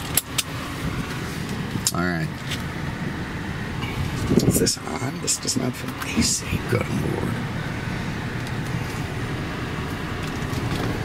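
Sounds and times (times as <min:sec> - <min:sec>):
air conditioning blower hiss: 0:00.0 - 0:11.0
car engine low rumble: 0:00.0 - 0:11.0.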